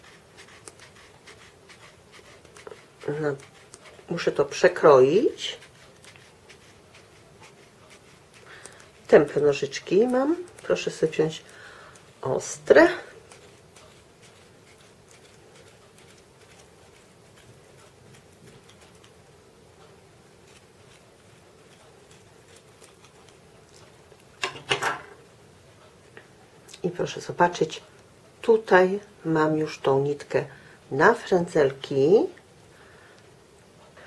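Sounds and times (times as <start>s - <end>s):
scissors snipping yarn: 0.0s - 19.4s, 20.4s - 24.3s.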